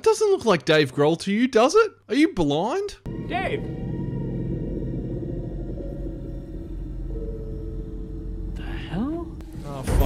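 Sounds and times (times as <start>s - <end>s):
low rumbling drone: 3.1s - 10.0s.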